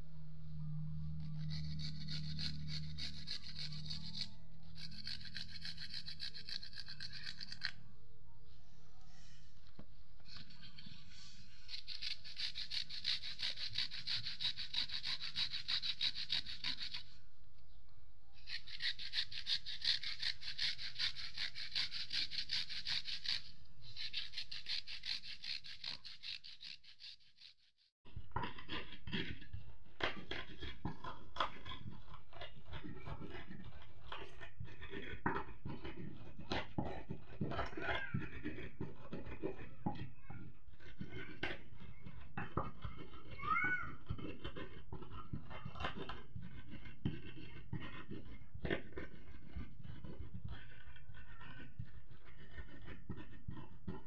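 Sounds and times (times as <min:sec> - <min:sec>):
grating on metal hand grater: 0:01.1 - 0:07.8, 0:10.4 - 0:17.2, 0:18.4 - 0:54.0.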